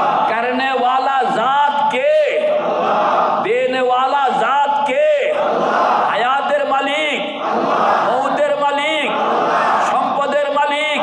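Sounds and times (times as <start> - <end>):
crowd of men chanting: 2.4 - 3.5, 5.3 - 10.0.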